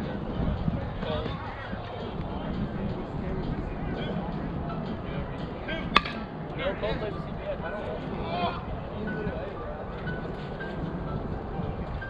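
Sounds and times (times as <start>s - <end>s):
bat striking softball ping: 5.9s - 6.3s.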